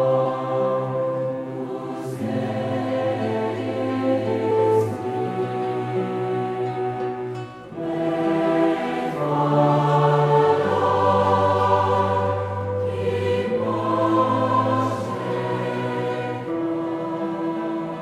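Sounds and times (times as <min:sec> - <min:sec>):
choir singing a chant: 0:00.0 - 0:18.0.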